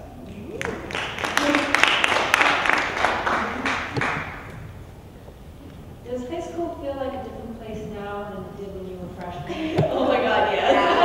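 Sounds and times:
audience clapping: 0.3s - 4.6s
voices: 5.1s - 11.0s.

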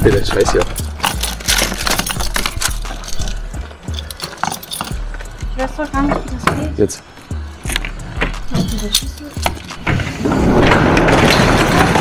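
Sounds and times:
music with deep bass beat: 0.0s - 11.0s
keys clicking in a lock: 0.4s - 5.0s, 8.5s - 9.8s.

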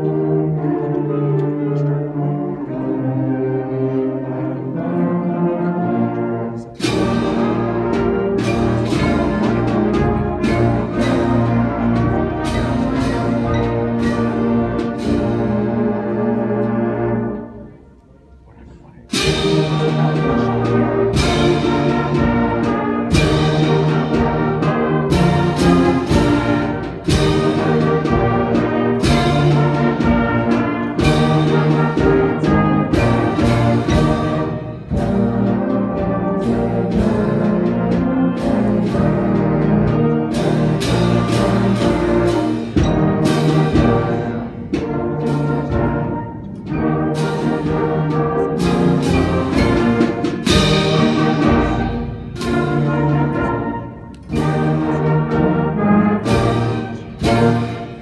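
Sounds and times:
concert band playing: 0.0s - 58.0s.

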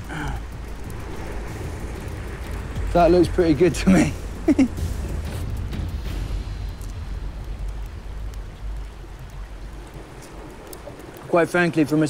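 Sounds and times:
campfire crackling: 0.0s - 12.0s.

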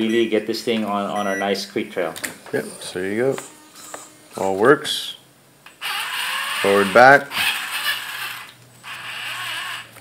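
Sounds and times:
toy car electric motor whirring: 5.7s - 10.0s.

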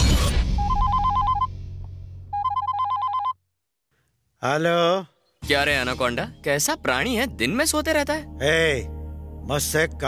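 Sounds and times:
phone ringing two-tone trill: 0.6s - 1.5s, 2.4s - 3.4s.

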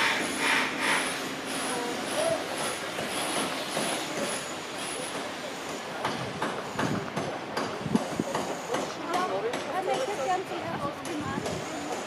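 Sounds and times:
rushing outdoor hiss: 0.0s - 12.0s.

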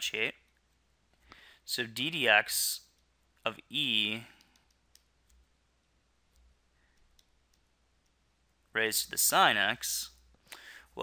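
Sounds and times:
stylus clicking on a tablet: 6.3s - 8.3s.

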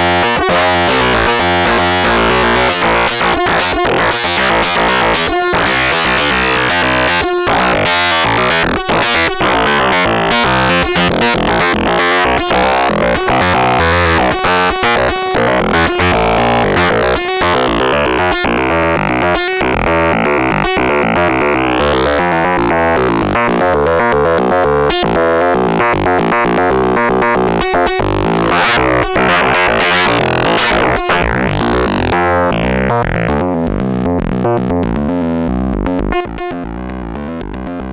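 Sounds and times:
modular synthesizer stepping notes: 0.0s - 37.9s.

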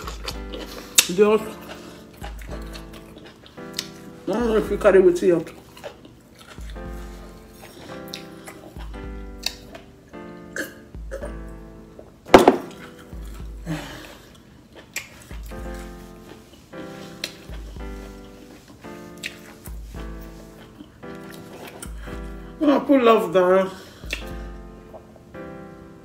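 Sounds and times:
background music with held chords: 0.0s - 26.0s.

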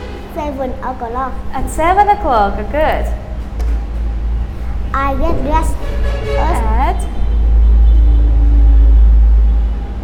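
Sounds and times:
loud low rumble: 4.0s - 10.0s.

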